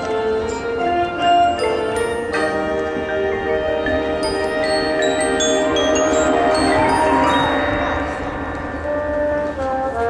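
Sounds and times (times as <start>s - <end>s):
marching band music: 0.0s - 10.0s
mallet percussion chords: 0.4s - 8.5s
high bell-like tones: 3.9s - 8.5s.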